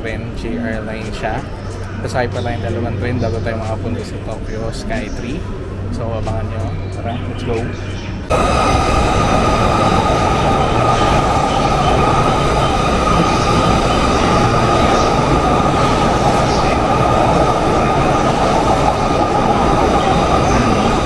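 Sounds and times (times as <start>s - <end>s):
high train whine: 0.0s - 21.0s
train wheels rumbling on rails: 6.0s - 21.0s.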